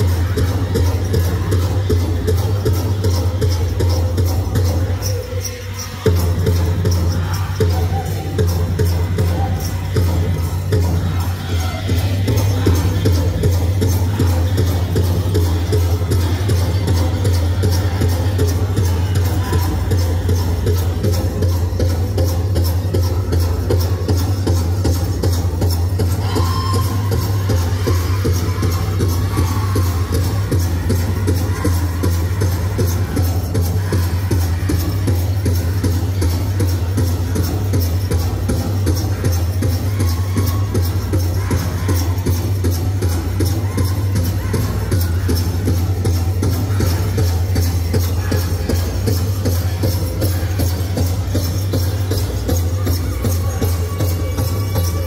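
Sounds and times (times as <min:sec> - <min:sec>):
large drum steady beat: 0:00.0 - 0:55.0.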